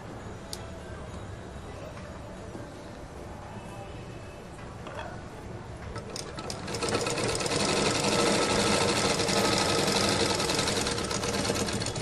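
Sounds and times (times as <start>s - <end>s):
sewing machine running: 6.0s - 12.0s.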